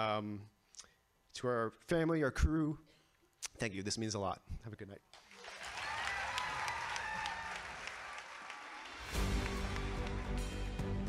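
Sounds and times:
audience applauding: 0:05.2 - 0:10.9.

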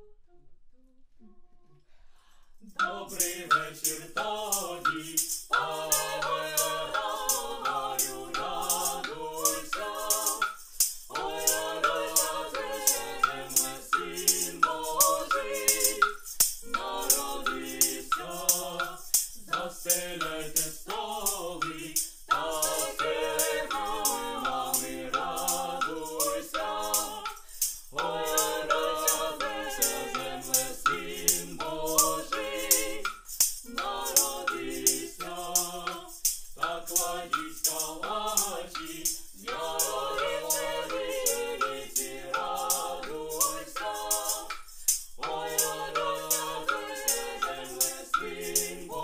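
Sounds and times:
person humming a carol tune: 0:02.6 - 0:10.4, 0:11.1 - 0:27.4, 0:28.0 - 0:33.0, 0:33.7 - 0:44.6
hand percussion clicks: 0:02.7 - 0:49.0
young voices singing unaccompanied: 0:02.8 - 0:49.0.

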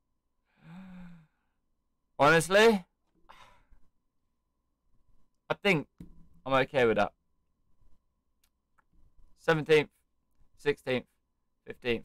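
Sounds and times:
man sighing: 0:00.5 - 0:01.5.

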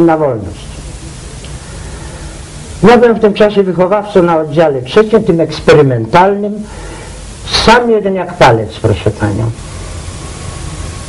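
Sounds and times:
man talking: 0:00.0 - 0:00.7, 0:02.8 - 0:06.7, 0:07.4 - 0:09.6
old recording hiss: 0:00.0 - 0:11.0.

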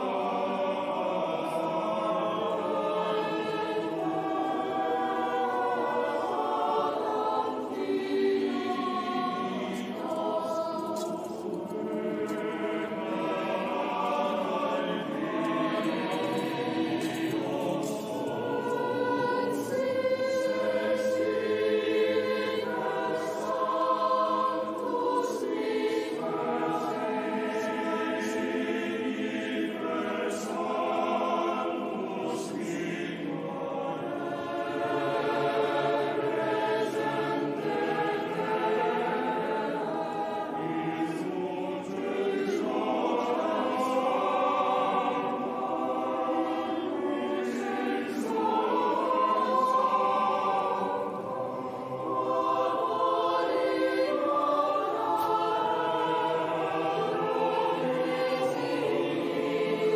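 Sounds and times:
choir singing slow chant: 0:00.0 - 0:59.9.

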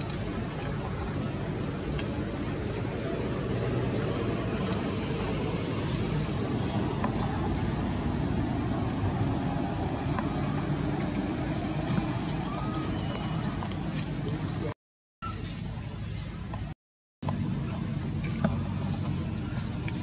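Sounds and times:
low rumbling outdoor noise: 0:00.0 - 0:20.0.

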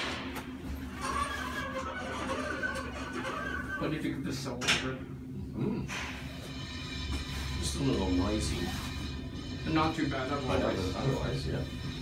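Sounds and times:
elevator running noise: 0:00.0 - 0:12.0.

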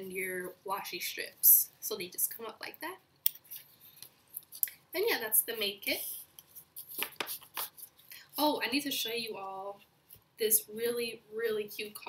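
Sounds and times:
paper sticker sheet crackling: 0:06.5 - 0:08.0.

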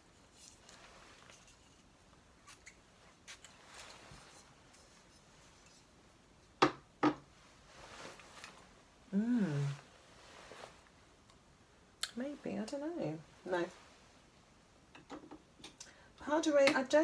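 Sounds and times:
rustling: 0:00.0 - 0:06.6, 0:07.3 - 0:11.2.

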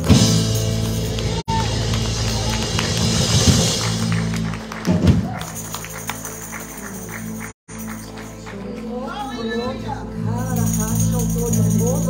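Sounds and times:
drums and cymbals: 0:00.0 - 0:05.6.

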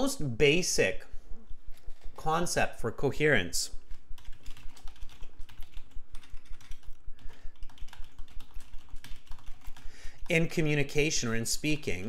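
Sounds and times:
computer keyboard typing: 0:03.9 - 0:11.2.

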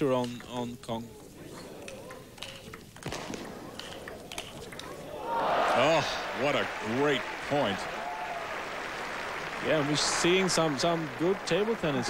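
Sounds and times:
table tennis ball clicks: 0:01.8 - 0:05.0
crowd applause and cheering: 0:05.1 - 0:12.0.

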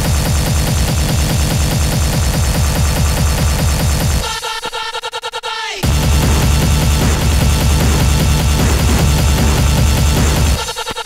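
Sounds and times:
fast heavy kick drum: 0:00.0 - 0:04.4, 0:05.8 - 0:10.8
stuttering synth tone: 0:05.8 - 0:10.8.

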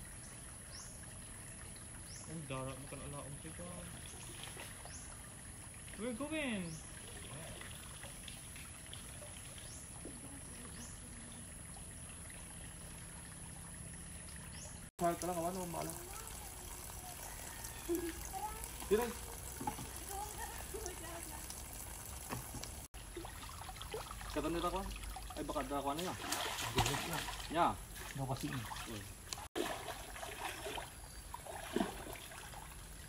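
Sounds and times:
trickle of running water: 0:00.0 - 0:33.0
voices talking: 0:15.0 - 0:22.8.

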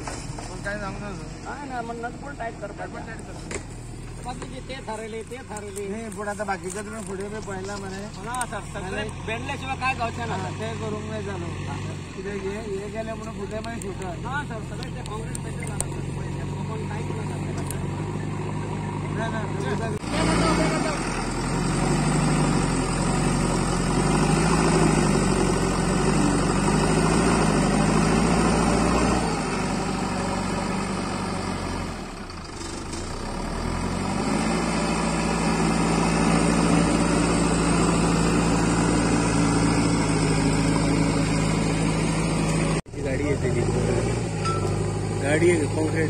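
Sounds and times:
diesel engine under load: 0:00.0 - 0:46.0.

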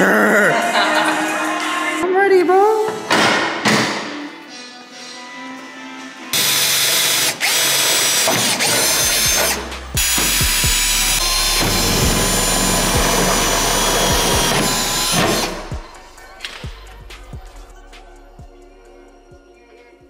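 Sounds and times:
background music with beat: 0:00.5 - 0:02.0, 0:08.8 - 0:20.0
cordless drill running: 0:06.4 - 0:15.8.

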